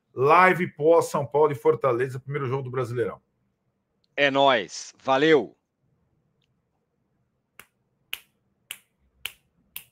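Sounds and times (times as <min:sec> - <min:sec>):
finger snaps: 0:07.5 - 0:09.9.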